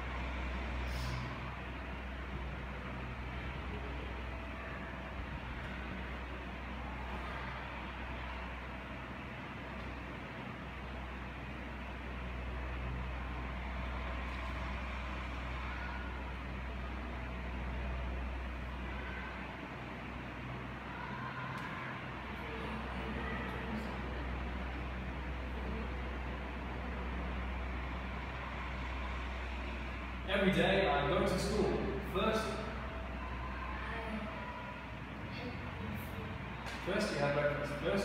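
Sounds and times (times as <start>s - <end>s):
low hum: 0.0s - 38.0s.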